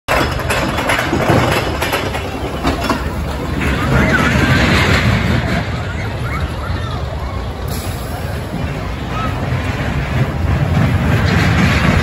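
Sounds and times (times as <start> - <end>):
people's voices: 0.1 - 12.0
roller coaster rattling rumble: 0.1 - 12.0.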